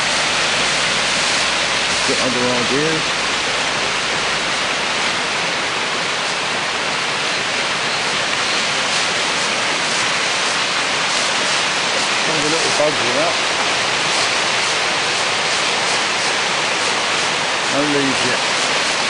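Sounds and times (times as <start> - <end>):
flooded brook water rushing: 0.0 - 19.0.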